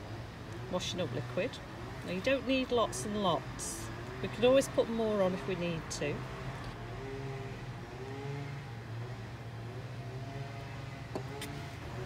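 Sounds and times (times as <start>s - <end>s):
engine humming: 0.0s - 12.0s.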